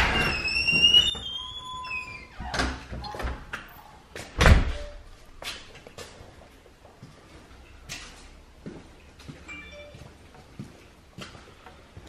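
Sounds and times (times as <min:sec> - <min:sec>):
door hinge squealing: 0:00.0 - 0:03.4.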